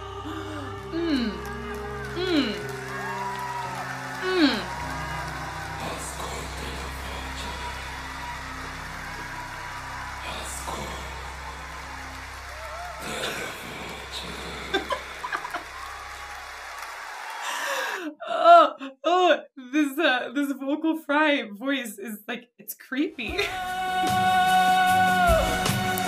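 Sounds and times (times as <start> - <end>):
concert hall crowd ambience: 1.4 - 16.5
low steady drone: 4.2 - 15.5
woman laughing loudly: 14.4 - 15.8.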